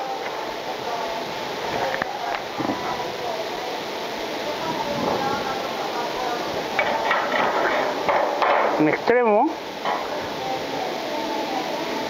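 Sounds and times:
workshop background noise: 0.0s - 12.0s
metal tubes clinking on steel: 6.8s - 9.0s.

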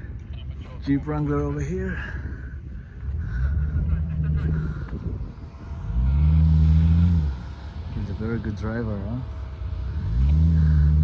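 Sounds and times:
car engine working hard: 0.0s - 11.0s.

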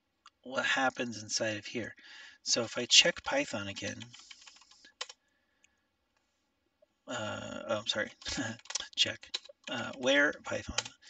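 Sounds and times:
typing on computer keyboard: 4.0s - 5.2s, 8.1s - 11.0s.

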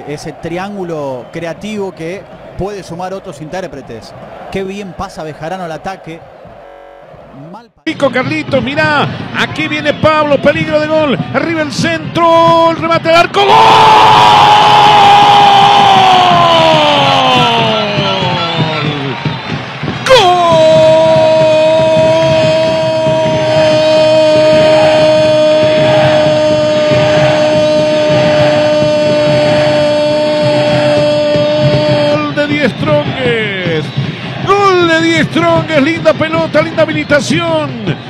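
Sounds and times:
commentator's drawn-out goal cry: 20.0s - 33.8s.

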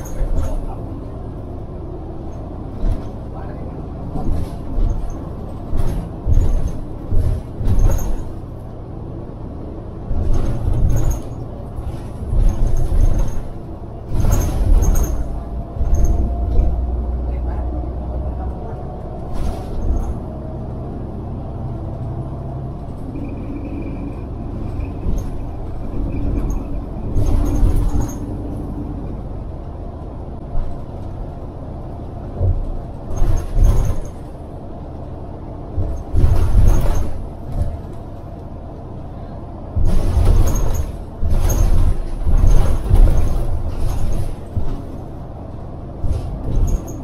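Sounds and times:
bus engine and road rumble: 0.0s - 47.0s.

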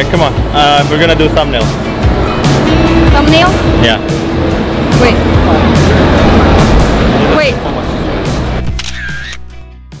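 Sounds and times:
street crowd noise: 0.0s - 9.4s
background music: 0.0s - 10.0s
camera shutter click: 8.6s - 9.5s.

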